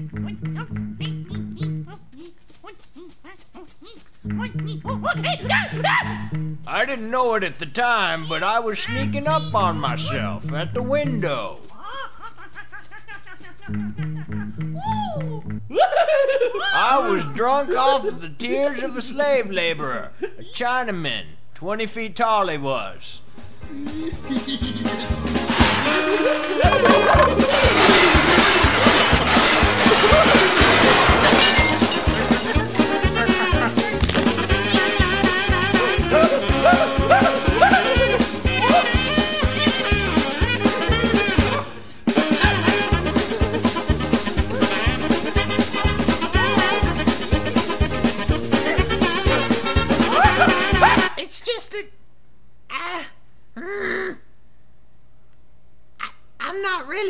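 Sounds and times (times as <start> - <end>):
lively cartoon music: 23.5 - 51.2
wordless vocal sounds: 23.7 - 38.9
crockery breaking: 25.4 - 34.5.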